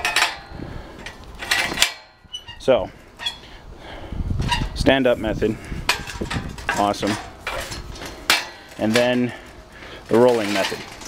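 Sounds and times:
hand truck metal clanking: 0.0s - 3.5s, 5.9s - 11.0s.

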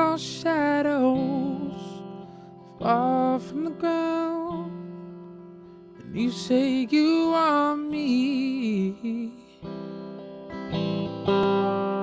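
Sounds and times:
man singing: 0.0s - 2.2s, 2.8s - 5.1s, 6.0s - 9.7s
electric guitar: 0.0s - 12.0s.

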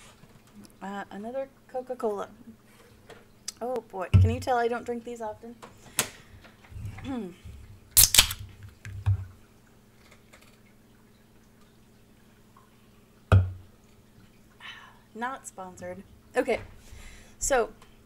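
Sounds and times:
soda can popping open with hiss: 8.0s - 8.5s.

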